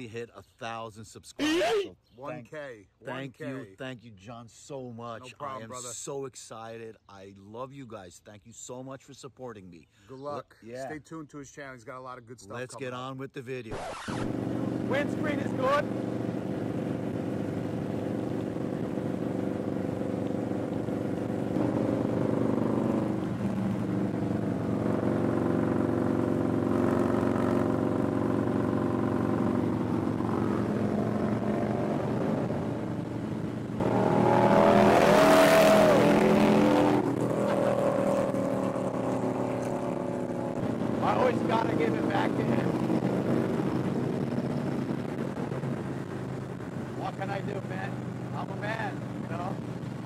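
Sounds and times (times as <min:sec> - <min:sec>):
road and wind rush: 0:13.8 - 0:50.0
motorcycle engine droning: 0:14.0 - 0:50.0.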